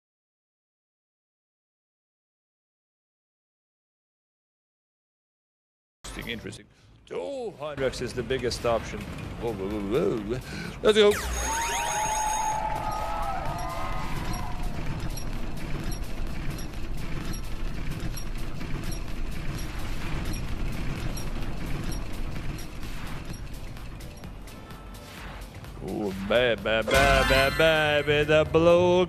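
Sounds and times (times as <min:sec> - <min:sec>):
prize wheel ticking as it spins: 0:11.0 - 0:24.6.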